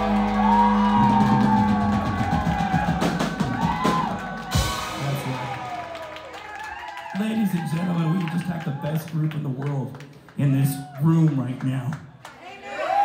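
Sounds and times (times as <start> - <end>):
drum fills: 0.0 - 6.2
live rock band: 0.0 - 6.2
cymbal crashes: 4.5 - 5.8.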